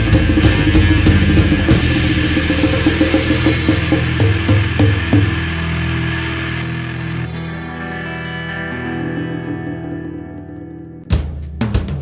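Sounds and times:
rock band music: 0.0s - 12.0s.

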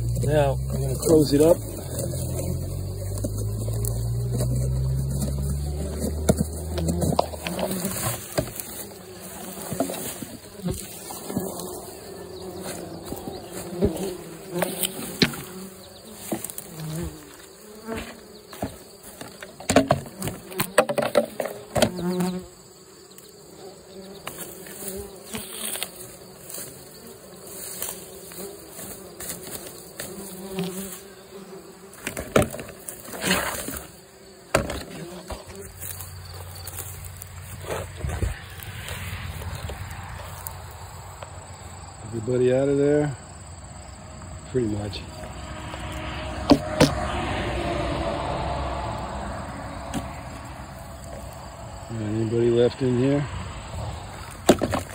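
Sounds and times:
hands rustling soil and grass: 0.0s - 19.6s, 24.2s - 31.2s, 34.9s - 41.8s
bumblebees buzzing: 0.0s - 54.9s.

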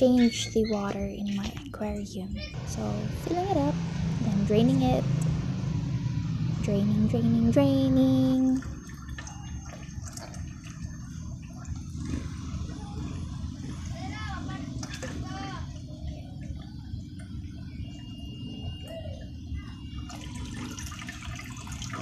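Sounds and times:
water bubbling: 8.4s - 18.8s, 19.8s - 22.0s.

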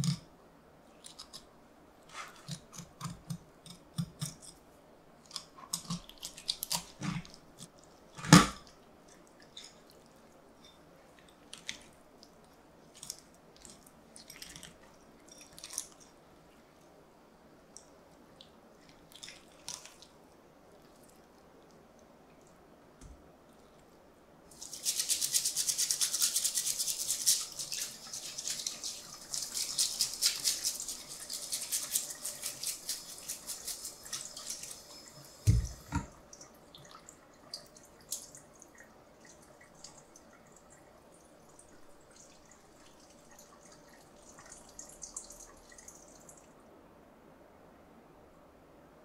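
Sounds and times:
brush scrubbing fish: 24.5s - 35.8s
running tap water: 24.5s - 40.7s.

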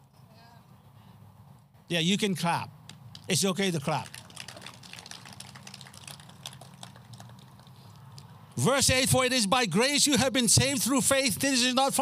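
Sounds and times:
sparse handclaps: 3.9s - 7.8s.

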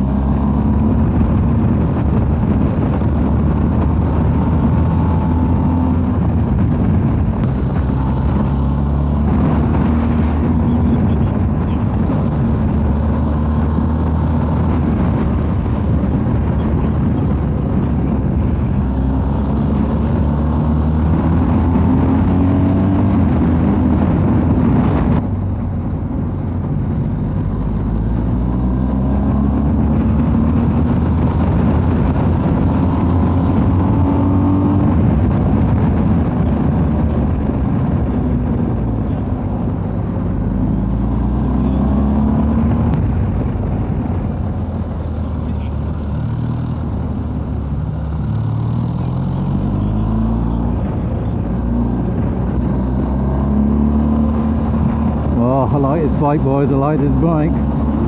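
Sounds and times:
motorcycle engine accelerating: 0.0s - 58.0s
wind noise: 0.0s - 58.0s.

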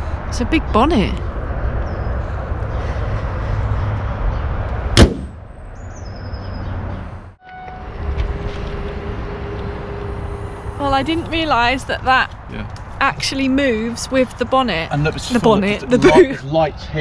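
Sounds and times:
steady hum: 7.8s - 16.5s
low steady rumble: 7.8s - 17.0s.

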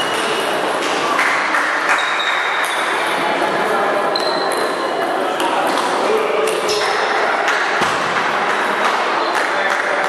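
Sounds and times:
murmur of voices in hall: 0.0s - 10.0s.

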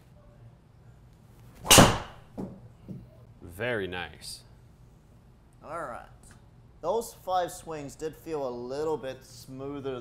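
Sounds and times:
golf driver striking ball: 1.6s - 2.2s.

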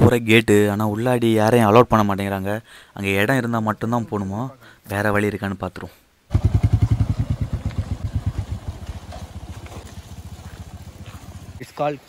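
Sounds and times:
motorcycle engine running: 6.3s - 11.8s.

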